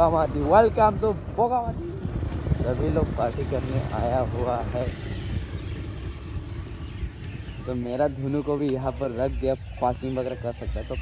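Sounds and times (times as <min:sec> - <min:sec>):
motorbike engine rumbling: 0:00.0 - 0:11.0.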